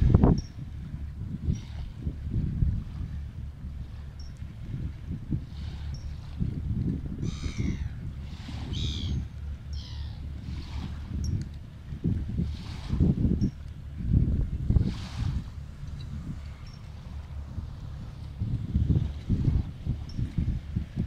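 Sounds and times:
wind buffeting microphone: 0:00.0 - 0:21.0
harsh bird calls: 0:07.2 - 0:08.0, 0:08.7 - 0:10.3.

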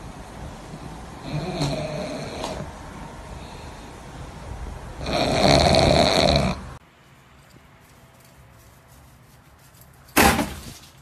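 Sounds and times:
dog breathing noisily: 0:01.2 - 0:04.2.

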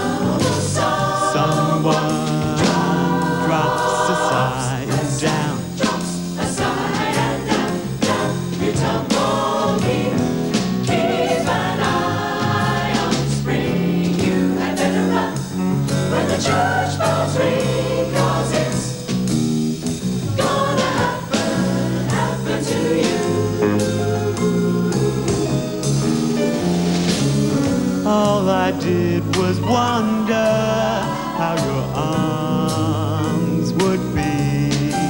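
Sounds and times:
jazz choir scat singing: 0:00.0 - 0:35.0.

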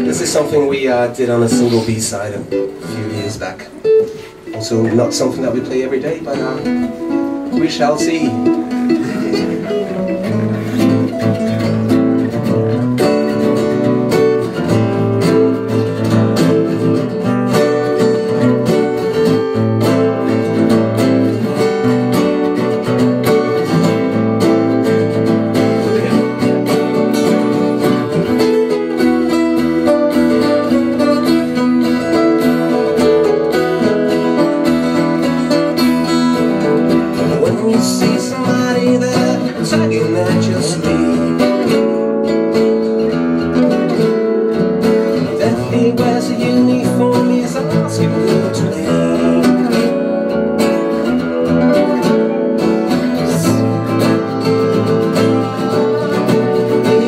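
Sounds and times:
acoustic guitars strummed and picked: 0:00.0 - 0:57.0.

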